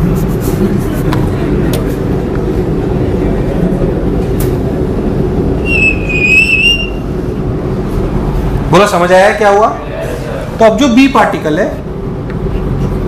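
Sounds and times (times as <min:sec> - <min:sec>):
low room rumble: 0:00.0 - 0:13.0
high chalk squeak: 0:05.7 - 0:07.0.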